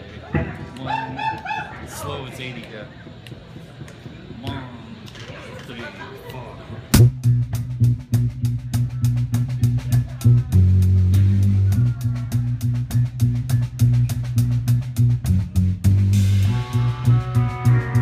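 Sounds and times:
rock band playing: 6.9s - 18.0s.

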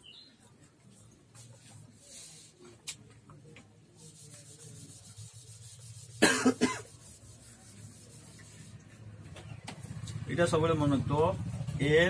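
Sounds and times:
duster wiping whiteboard: 4.0s - 9.0s.

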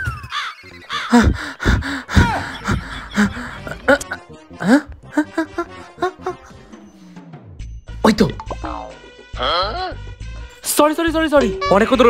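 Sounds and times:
person making wordless vocal sounds: 0.9s - 6.6s, 9.3s - 10.0s.

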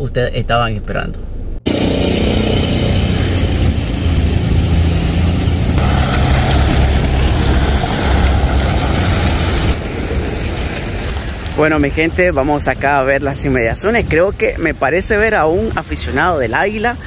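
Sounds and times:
steady low rumble: 0.0s - 17.0s
vehicles driving on wet road: 1.7s - 17.0s.

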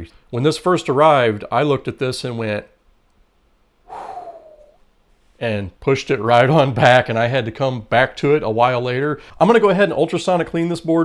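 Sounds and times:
man's breathy vocal reaction: 3.9s - 4.8s.

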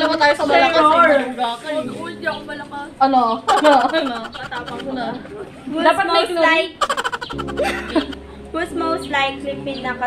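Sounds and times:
young women chattering: 0.0s - 1.5s, 2.3s - 9.8s.

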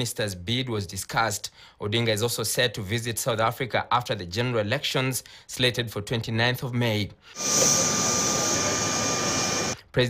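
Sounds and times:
jet engines whining: 7.4s - 9.8s.

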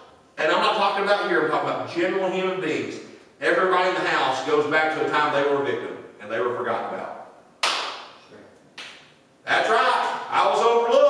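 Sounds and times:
sharp hand slaps: 7.6s - 8.2s, 8.8s - 9.1s.

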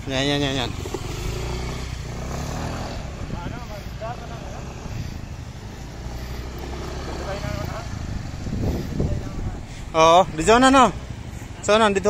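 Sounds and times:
motor scooter engine: 0.0s - 12.0s.

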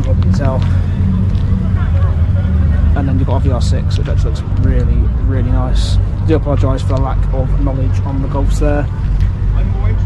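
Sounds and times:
car engine idling: 0.0s - 10.0s
voices murmuring faintly: 0.0s - 10.0s.

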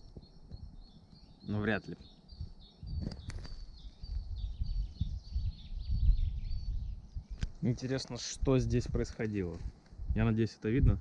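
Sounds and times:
songbirds chirping: 0.0s - 11.0s.

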